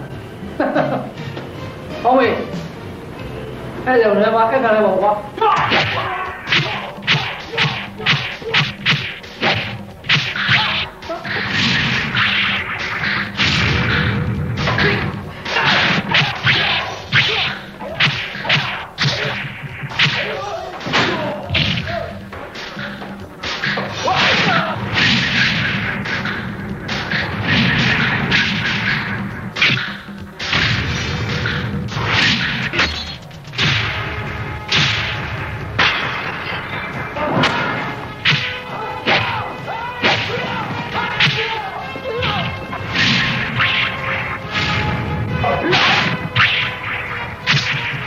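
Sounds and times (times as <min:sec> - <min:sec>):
background music: 0:00.0 - 0:48.0
punch and kick whoosh thwacks: 0:05.7 - 0:21.9.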